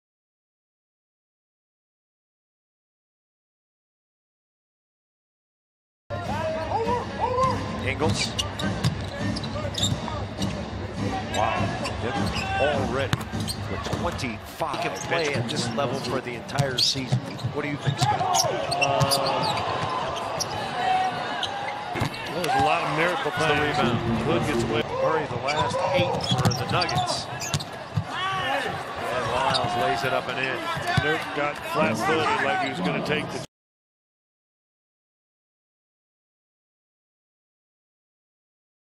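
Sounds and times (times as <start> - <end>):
sneaker squeaks on floor: 7.4 - 10.6, 11.3 - 13.7, 16.8 - 20.6, 25.4 - 28.1, 29.4 - 29.8
arena crowd murmur: 17.3 - 33.5
commentator speaking: 22.4 - 27.2.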